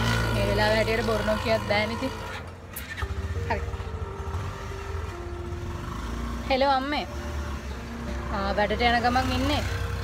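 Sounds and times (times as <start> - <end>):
auto-rickshaw engine running: 0.0 - 10.0
low road rumble: 0.0 - 10.0.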